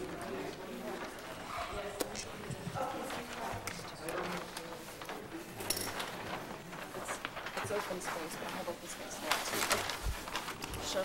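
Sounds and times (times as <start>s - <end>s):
faint indistinct voices talking: 0.0s - 11.0s.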